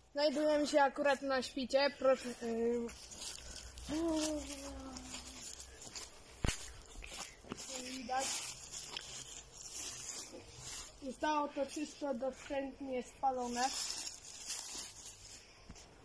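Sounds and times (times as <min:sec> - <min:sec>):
footsteps on forest floor litter: 0:00.1 - 0:16.0.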